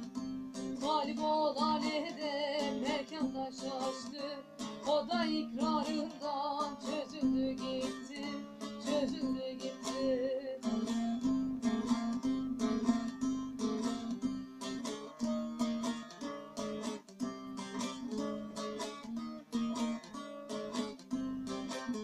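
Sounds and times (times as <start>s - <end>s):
long-necked lute picked fast: 0.0s - 22.0s.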